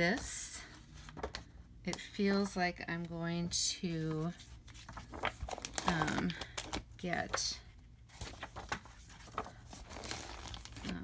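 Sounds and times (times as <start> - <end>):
magazine pages rustling: 0.1 - 2.6, 3.8 - 11.0.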